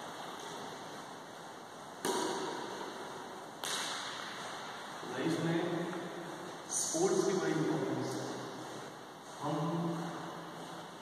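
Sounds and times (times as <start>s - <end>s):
steady hiss: 0.0s - 11.0s
racket striking shuttlecock: 2.0s - 4.6s.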